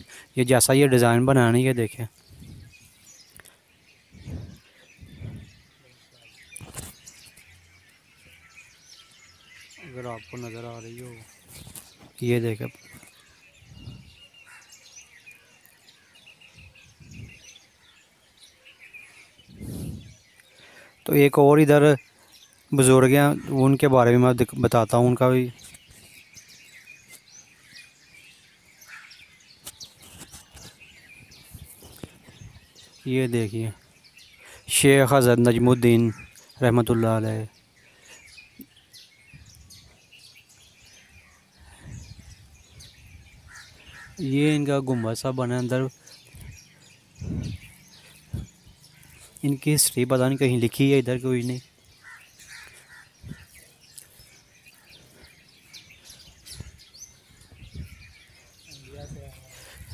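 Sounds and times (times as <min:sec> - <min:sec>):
birds chirping: 0:00.0 - 0:59.9
faint outdoor hiss: 0:00.0 - 0:59.9
soft low thumps: 0:04.1 - 0:05.6.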